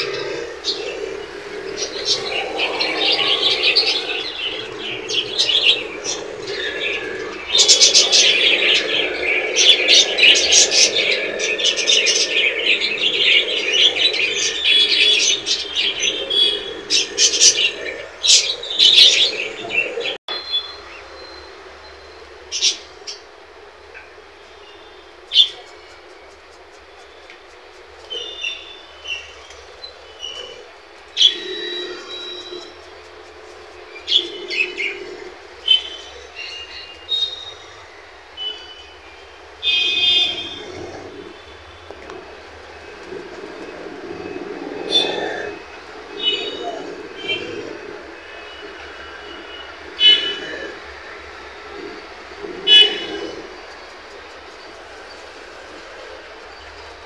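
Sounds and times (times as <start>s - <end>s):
birds chirping and chattering: 0.0s - 57.0s.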